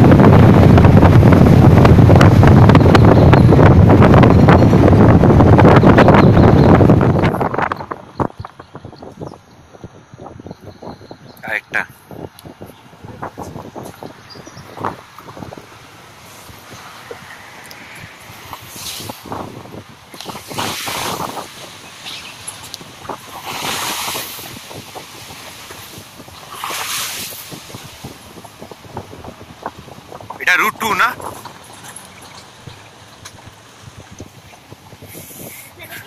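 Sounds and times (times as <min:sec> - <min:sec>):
jeep driving on dirt track: 0:00.0 - 0:36.0
rushing swells: 0:12.9 - 0:35.8.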